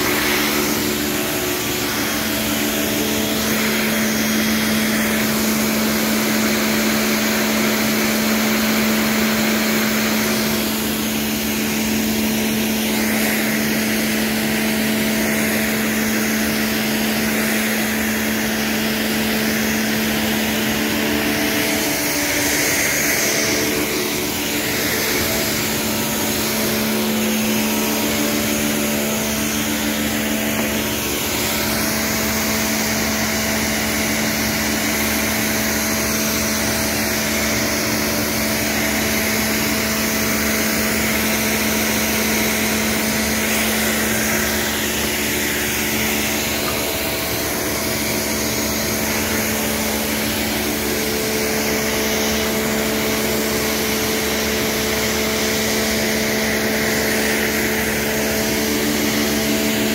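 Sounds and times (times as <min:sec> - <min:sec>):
pressure washer pump humming: 0:00.0 - 0:59.9
water jet hissing on tiles: 0:00.0 - 0:59.9.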